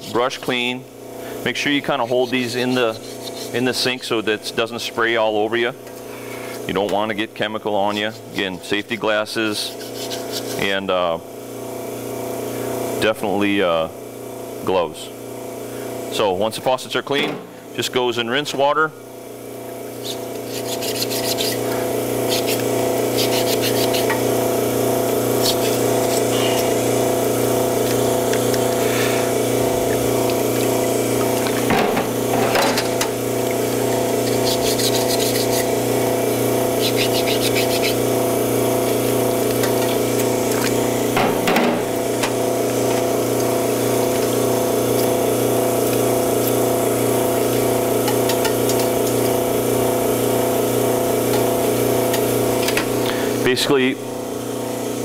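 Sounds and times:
electric pump humming: 0:00.0 - 0:55.0.

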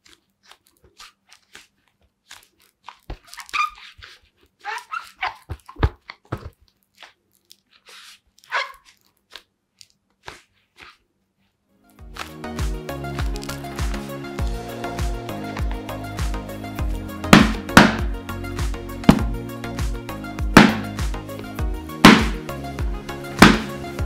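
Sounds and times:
gloves rubbing a football: 0:00.0 - 0:24.0
short squeaks: 0:03.2 - 0:05.8, 0:07.7 - 0:09.0.

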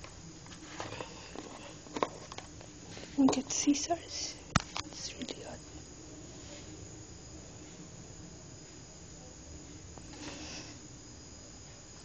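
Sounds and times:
objects being handled: 0:00.5 - 0:03.6.

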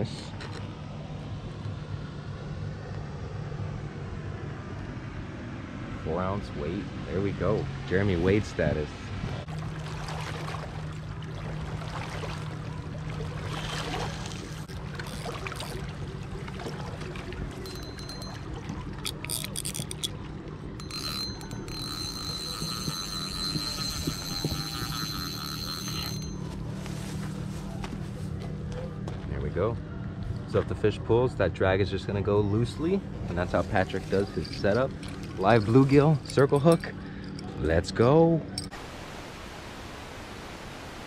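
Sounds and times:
boat motor humming: 0:00.0 - 0:39.7
fishing reel clicking: 0:14.3 - 0:15.8, 0:17.6 - 0:20.2, 0:20.8 - 0:26.4
high steady tone: 0:17.6 - 0:27.1.

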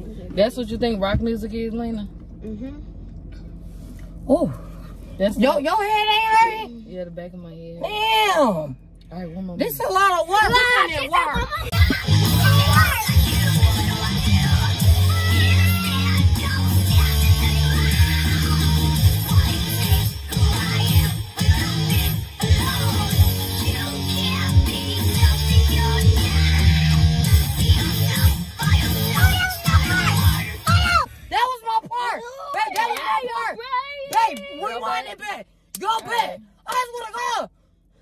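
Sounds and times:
loud rock music: 0:11.8 - 0:30.9.

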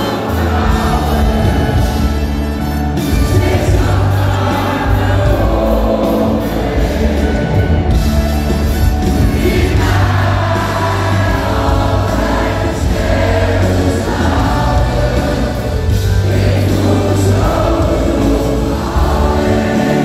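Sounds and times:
crowd singing along: 0:00.0 - 0:20.0
loud live pop music: 0:00.0 - 0:20.0.

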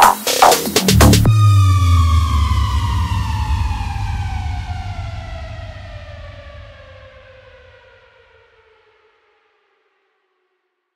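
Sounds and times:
low bass rumble: 0:00.9 - 0:06.9.

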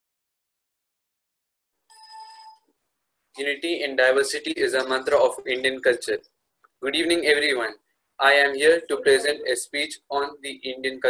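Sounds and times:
ringing chime: 0:01.9 - 0:02.7.

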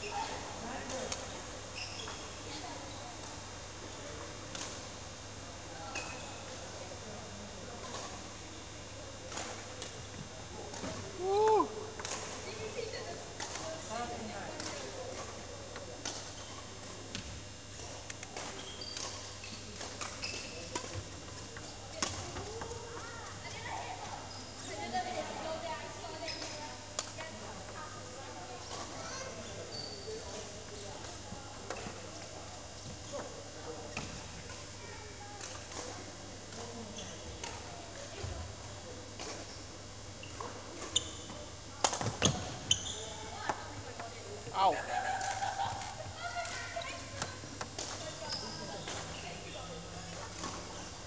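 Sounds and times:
voices in hall: 0:00.0 - 0:51.0.

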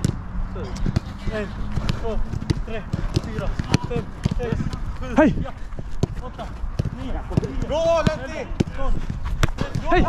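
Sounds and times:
football being kicked: 0:00.0 - 0:10.0
players shouting: 0:00.5 - 0:10.0.

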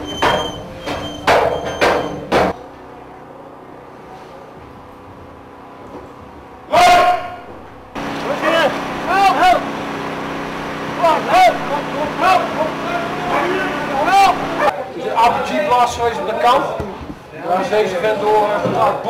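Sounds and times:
people shouting and crying out: 0:06.7 - 0:07.6, 0:11.0 - 0:14.8
engine hum: 0:07.5 - 0:14.7.

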